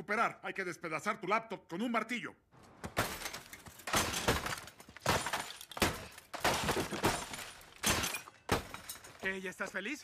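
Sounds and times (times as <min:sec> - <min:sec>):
hammer smashing laptop: 0:02.9 - 0:09.0.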